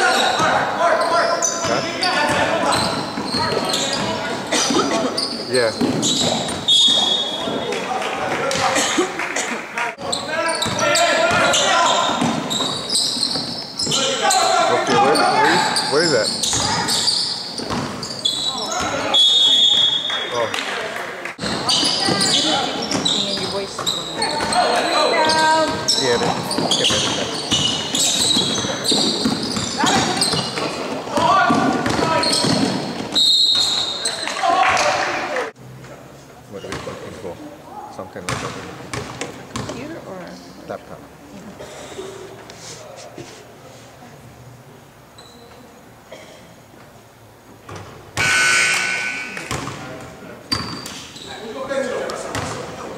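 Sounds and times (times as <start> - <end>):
voices shouting in a gym: 0.0 - 35.6
short high squeaks: 10.1 - 20.4, 21.6 - 30.6
basketball bouncing on hardwood: 31.5 - 32.8.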